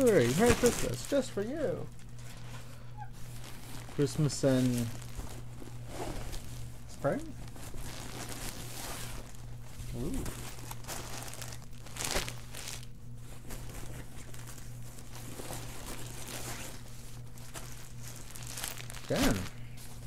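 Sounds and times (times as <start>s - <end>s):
plastic bag crinkling: 0.0s - 20.0s.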